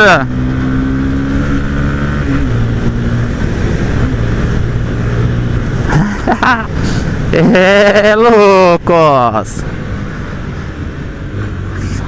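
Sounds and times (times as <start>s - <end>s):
low engine hum: 0.0s - 12.0s
wind rushing over microphone: 0.3s - 6.0s.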